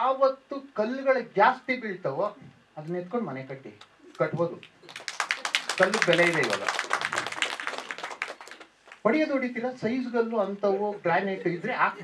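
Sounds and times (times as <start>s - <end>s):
audience applauding: 4.8s - 9.0s.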